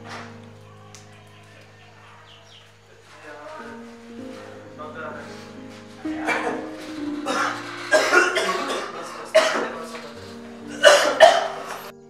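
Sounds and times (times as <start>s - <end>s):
soft background music: 0.0s - 12.0s
man coughing harshly: 6.2s - 6.6s, 7.3s - 10.1s, 10.7s - 11.9s.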